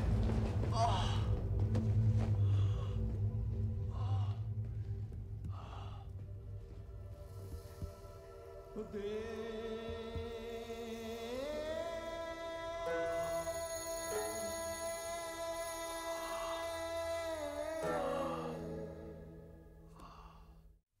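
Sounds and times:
low droning music: 0:00.0 - 0:20.8
person sighing: 0:19.9 - 0:20.6
person gasping: 0:19.9 - 0:20.7.

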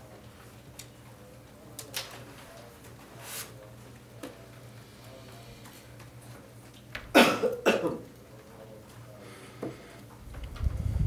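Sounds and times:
person coughing: 0:07.1 - 0:08.0.

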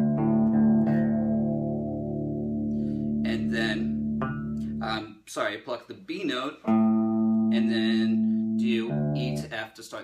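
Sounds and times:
electric guitar power chord ringing: 0:00.0 - 0:04.8, 0:06.7 - 0:09.4.

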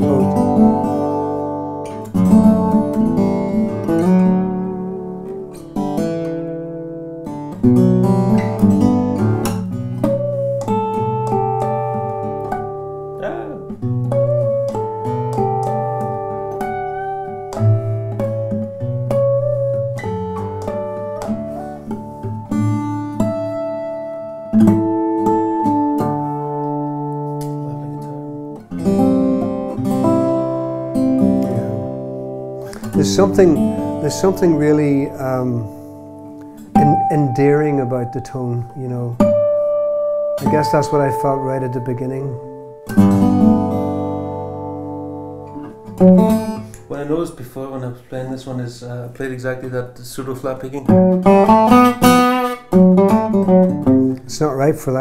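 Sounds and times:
fingerpicked acoustic guitar: 0:00.0 - 0:47.7, 0:50.1 - 0:55.0.

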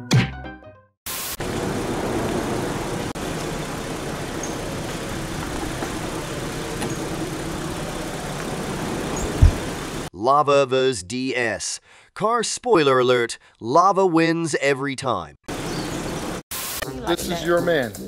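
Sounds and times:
low thump: 0:09.3 - 0:09.8.

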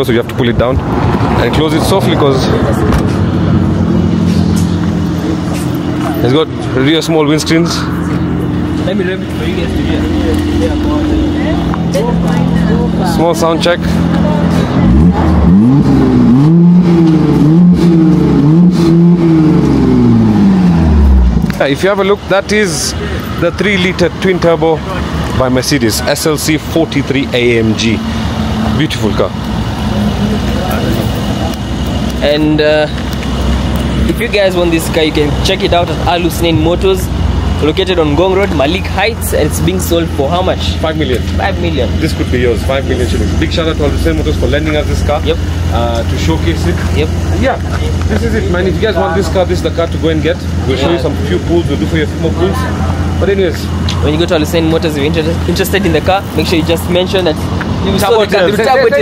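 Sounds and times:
faint voices: 0:00.0 - 0:15.7
car engine idling: 0:00.0 - 0:59.0.

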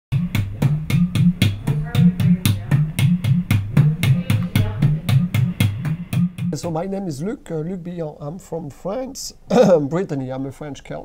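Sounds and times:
repeating bass line: 0:00.1 - 0:06.8
steady drum beat: 0:00.1 - 0:06.9.

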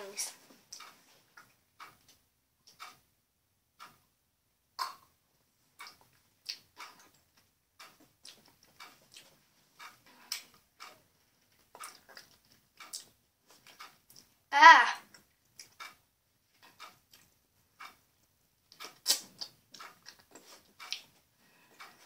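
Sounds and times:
mouth and lip smacks: 0:11.5 - 0:14.4, 0:18.7 - 0:21.1.

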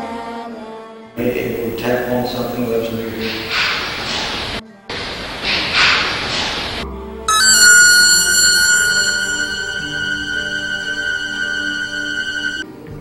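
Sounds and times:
sustained high ringing tone: 0:07.3 - 0:12.7.

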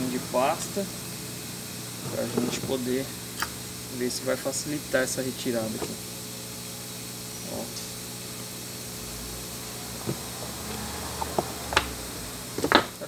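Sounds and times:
hot air station humming and hissing: 0:00.0 - 0:13.0.

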